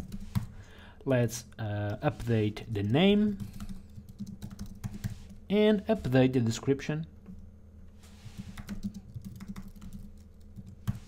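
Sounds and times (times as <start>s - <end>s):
computer keyboard typing: 2.7s - 5.3s, 8.4s - 11.0s.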